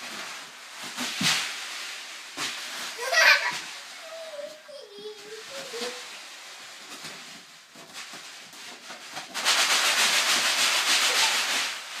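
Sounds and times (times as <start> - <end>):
rubber balloon rubbing: 0.0 - 12.0.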